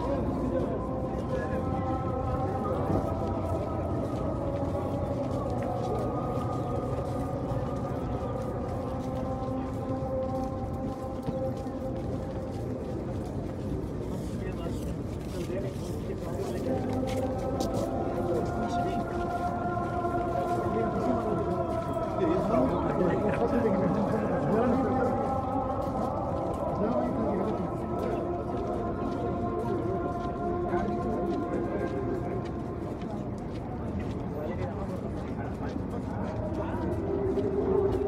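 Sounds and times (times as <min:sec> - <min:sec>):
call to prayer over loudspeakers: 0:00.0 - 0:38.0.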